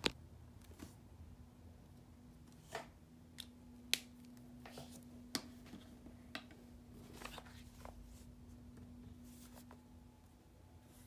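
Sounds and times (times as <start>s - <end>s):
paper rustling: 7.0s - 8.3s.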